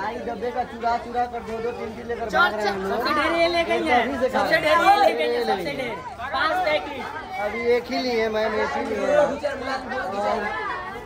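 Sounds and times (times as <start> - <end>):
group chatter: 0.0 - 11.0.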